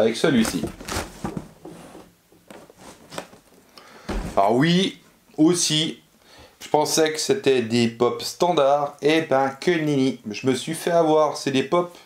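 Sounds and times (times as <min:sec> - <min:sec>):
cardboard box knocks and scrapes: 0:00.5 - 0:03.3.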